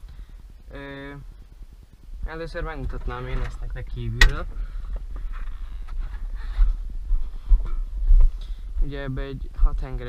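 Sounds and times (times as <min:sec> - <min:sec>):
low uneven rumble: 0:00.0 - 0:10.0
footsteps on grass: 0:05.0 - 0:09.0.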